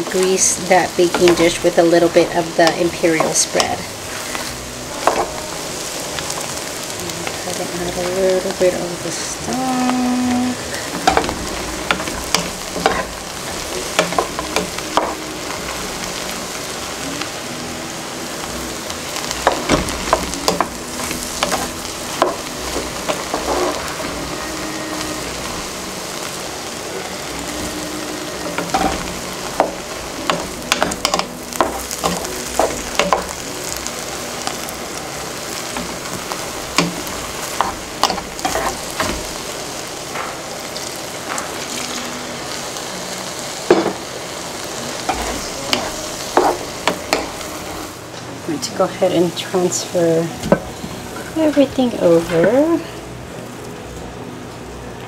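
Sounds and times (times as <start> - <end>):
sizzling in a skillet: 0.0 - 55.0
spoon knocking and scraping pan: 11.0 - 13.1, 13.8 - 15.2, 28.6 - 33.3, 36.8 - 39.3, 45.1 - 47.4.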